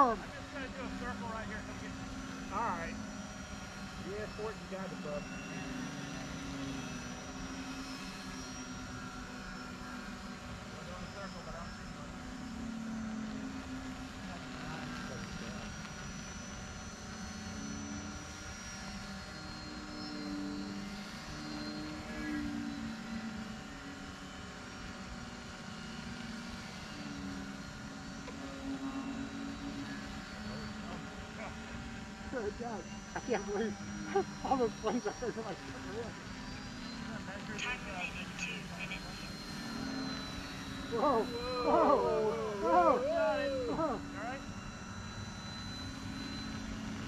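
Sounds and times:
model airplane motors droning: 0:00.0 - 0:47.0.

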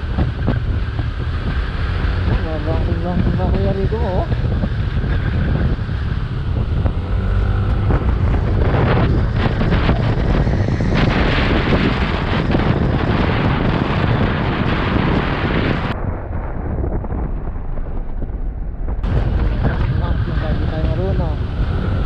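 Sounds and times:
motorcycle engine running: 0:00.0 - 0:16.0, 0:18.6 - 0:22.0
wind buffeting microphone: 0:00.0 - 0:22.0.

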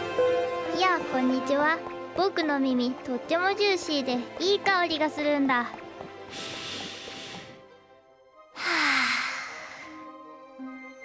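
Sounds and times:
soft background music: 0:00.0 - 0:11.0
person sighing: 0:08.6 - 0:10.0.

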